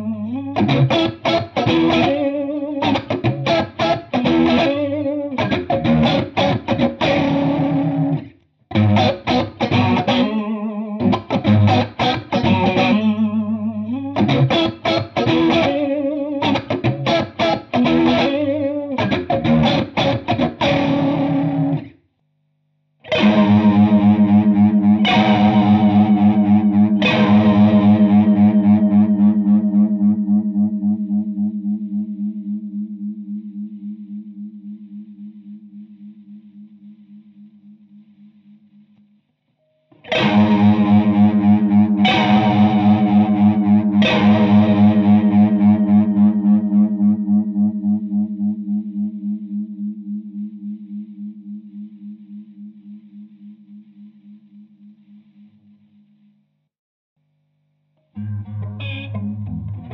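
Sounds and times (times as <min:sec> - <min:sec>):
electric guitar chords with chorus: 0:00.0 - 0:21.9, 0:23.1 - 0:35.8, 0:40.0 - 0:51.9, 0:58.2 - 0:59.9.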